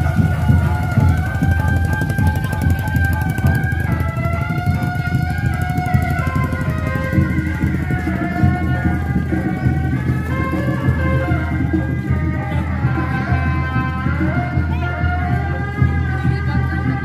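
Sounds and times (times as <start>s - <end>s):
dense continuous drumming: 0.0s - 17.0s
shrill reed wind instrument: 0.0s - 17.0s.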